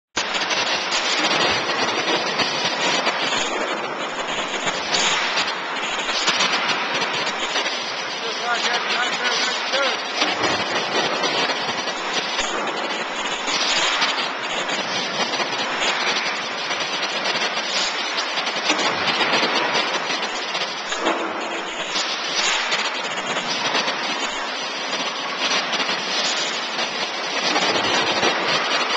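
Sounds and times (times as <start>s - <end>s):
factory machinery hissing: 0.2s - 28.9s.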